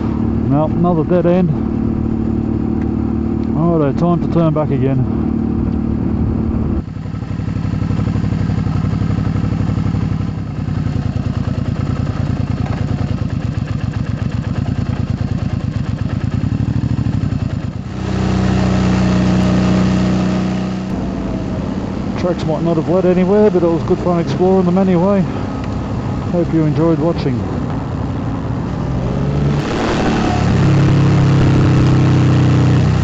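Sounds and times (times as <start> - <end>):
motorcycle engine running: 0.0 - 33.0.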